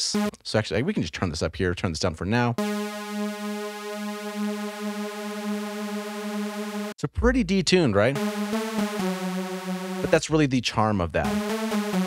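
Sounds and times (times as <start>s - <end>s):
detuned synthesizer saw note: 8.2s - 10.2s.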